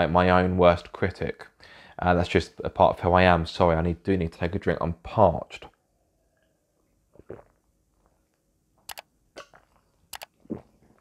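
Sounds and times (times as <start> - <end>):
soft gulp: 7.2 - 7.6, 9.4 - 9.8, 10.4 - 11.0.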